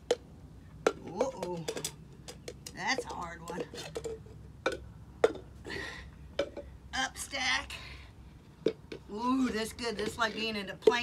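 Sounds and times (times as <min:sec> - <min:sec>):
plastic cups clacking on concrete: 0:00.0 - 0:05.6, 0:06.3 - 0:06.8, 0:08.6 - 0:11.0.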